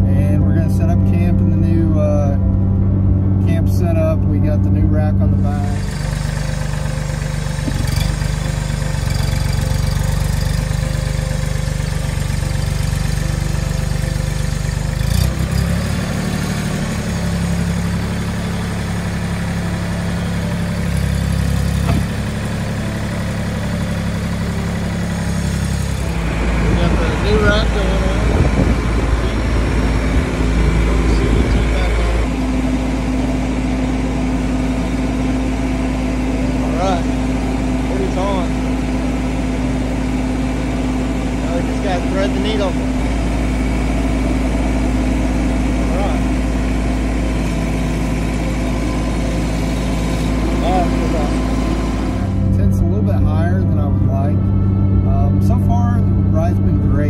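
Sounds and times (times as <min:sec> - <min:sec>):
steady higher hum: 0:00.0 - 0:57.0
tractor diesel engine running: 0:00.0 - 0:57.0.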